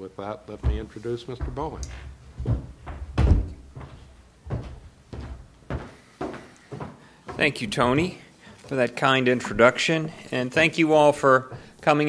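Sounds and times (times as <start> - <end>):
dull thumps and knocks: 0.5 - 8.1.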